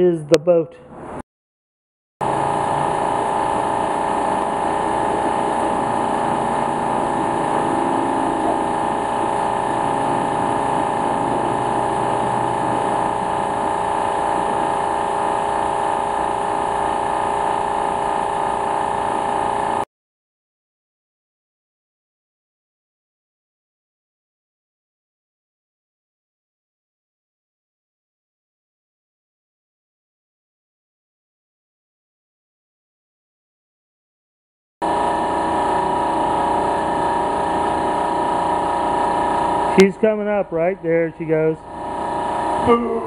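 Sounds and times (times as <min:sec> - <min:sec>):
mechanical drone with hum: 0:02.2 - 0:19.8, 0:34.8 - 0:43.0.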